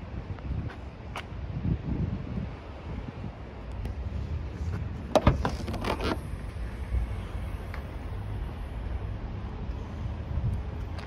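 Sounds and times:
low wind rumble: 0.0s - 11.0s
tailgate scraping open: 5.1s - 6.4s.

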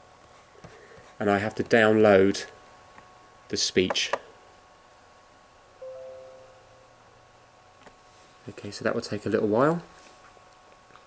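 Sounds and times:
soft chime: 5.8s - 7.2s.

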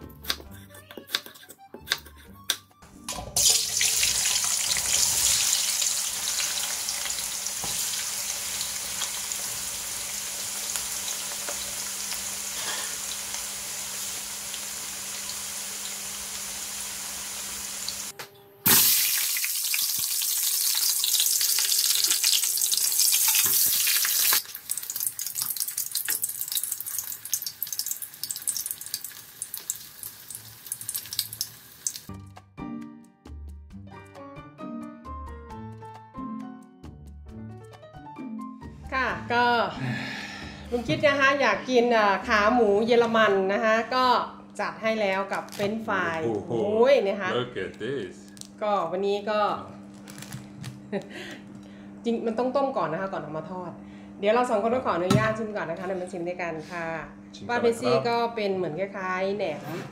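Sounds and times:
food deep-frying in hot oil: 3.4s - 18.1s, 18.7s - 32.1s
oil crackling and spattering: 18.7s - 32.1s.

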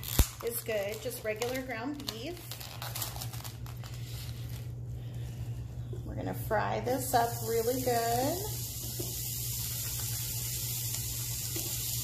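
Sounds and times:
plastic packaging crinkling: 0.0s - 4.8s
steady low hum: 0.0s - 12.0s.

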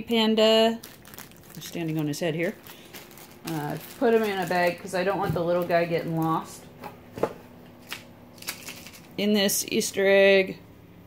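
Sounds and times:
plastic bag crinkling: 0.5s - 6.6s, 7.8s - 9.2s.

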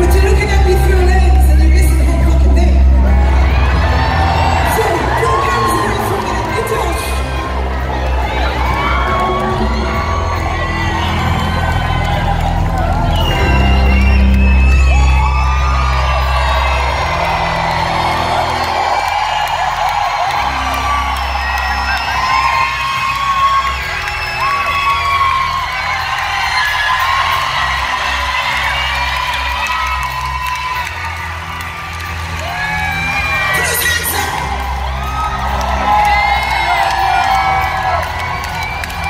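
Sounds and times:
crowd whooping and cheering: 0.0s - 39.0s.

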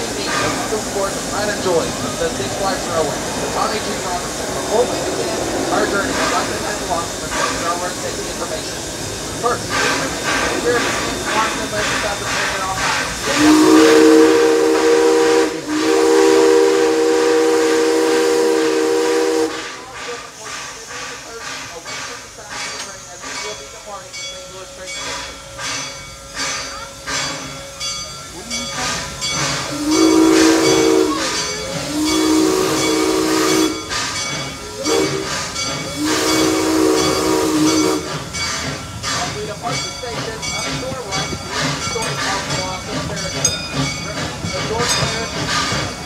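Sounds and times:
locomotive chuffing: 0.0s - 46.0s
steam hissing: 0.0s - 46.0s
steam locomotive whistle: 9.7s - 20.2s, 28.9s - 38.3s.

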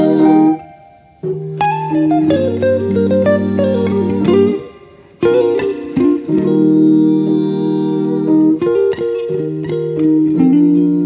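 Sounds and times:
electric guitar melody: 0.0s - 11.0s.

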